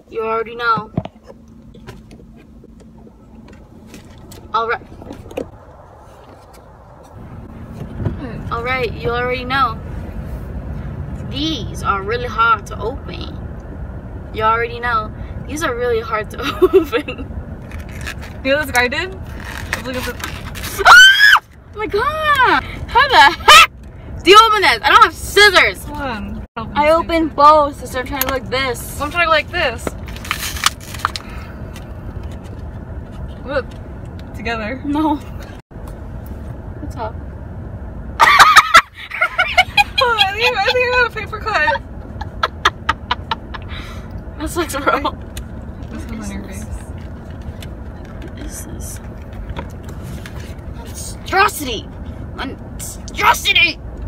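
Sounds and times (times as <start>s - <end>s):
car interior hum: 0.0s - 54.0s.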